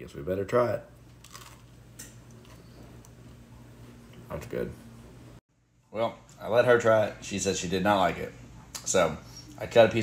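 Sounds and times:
person chewing bread: 1.1 - 3.4.

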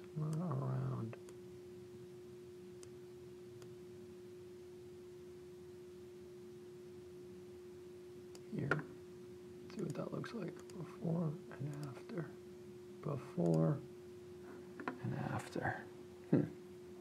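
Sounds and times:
faint steady hum: 0.0 - 17.0
computer mouse clicks: 11.6 - 12.0.

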